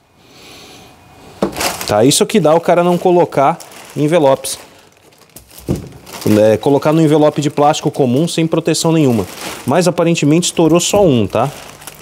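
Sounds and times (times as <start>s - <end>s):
plastic mailer bag rustling: 1.4s - 12.0s.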